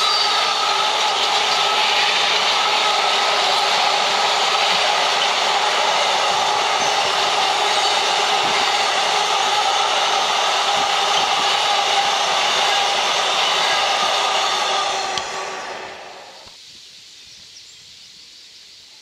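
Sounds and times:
freight train wheels on rail: 0.0 - 16.6.

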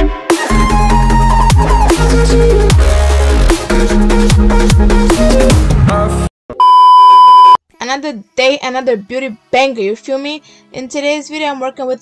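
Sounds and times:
electronic dance music: 0.0 - 6.2
steady bleep tone: 6.6 - 7.6
woman talking: 7.8 - 12.0.

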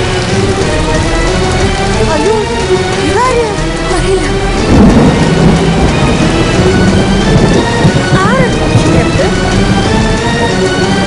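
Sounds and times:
background music: 0.0 - 11.0
heavy rumble of thunder: 0.0 - 11.0
rushing storm noise: 0.0 - 11.0.

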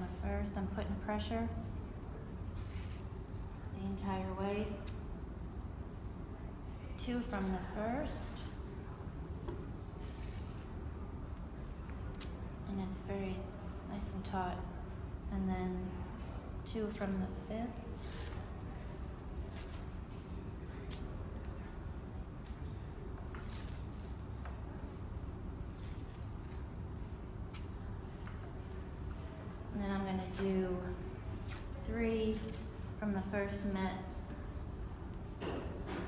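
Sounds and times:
steady low hum: 0.0 - 36.0
tape pulled from roll: 2.5 - 3.7, 23.2 - 25.1.

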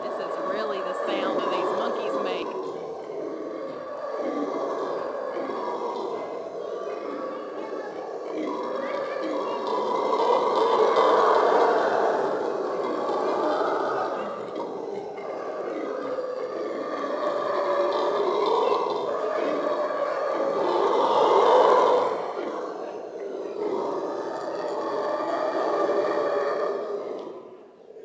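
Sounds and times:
monkeys screaming: 0.0 - 5.2.

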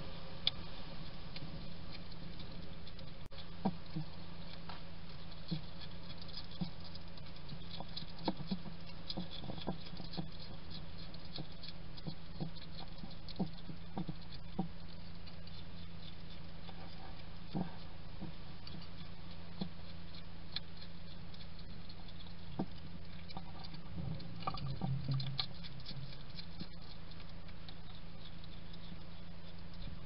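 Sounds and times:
hedgehog crunching dry food: 0.0 - 30.0
steady low hum: 0.0 - 30.0.

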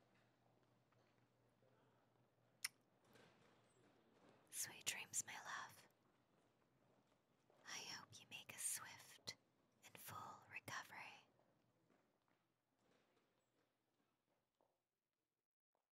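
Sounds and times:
woman whispering: 4.5 - 5.9, 7.7 - 11.3.

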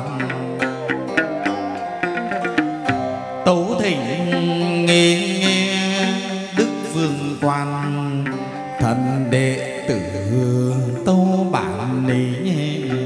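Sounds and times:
ritual music with sliding melody: 0.0 - 13.0.

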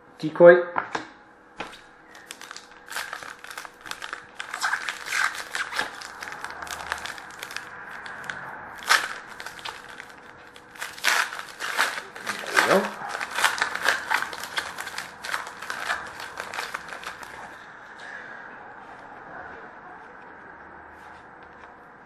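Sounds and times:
wrapper crinkling and tearing: 2.1 - 17.6.

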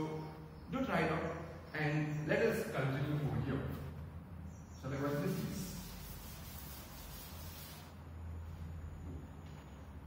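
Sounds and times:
duster scrubbing a blackboard: 5.0 - 8.0.

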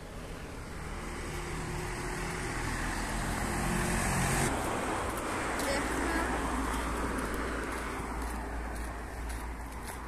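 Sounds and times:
vehicle passing on street: 0.0 - 10.0.

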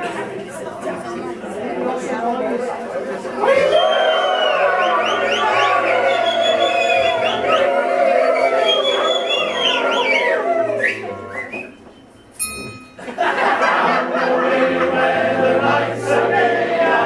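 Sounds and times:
high whistled glides: 3.8 - 12.9
male voice choir singing: 13.6 - 17.0.

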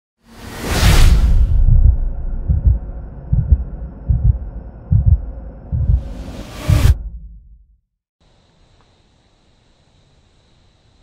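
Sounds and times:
rising whoosh: 0.3 - 7.4
deep double thumps: 1.5 - 7.8.

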